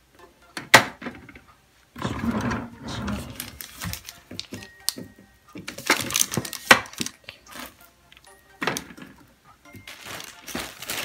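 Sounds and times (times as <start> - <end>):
drawer scraping and rumbling: 2.0 - 3.6.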